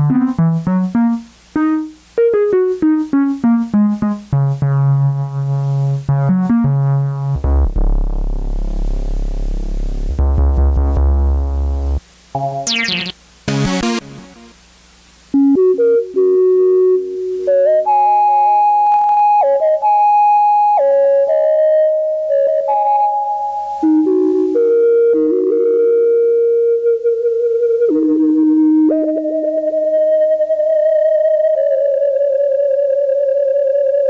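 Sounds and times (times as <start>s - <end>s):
synthesizer melody: 12.7s - 14.5s.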